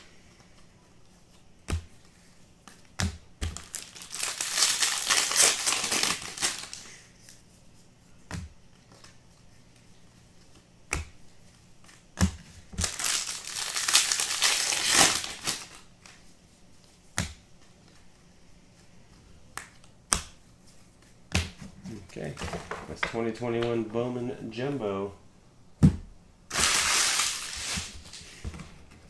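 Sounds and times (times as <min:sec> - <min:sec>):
foil wrappers crinkling and tearing: 0:03.5 - 0:07.0, 0:12.8 - 0:15.9, 0:26.5 - 0:28.2.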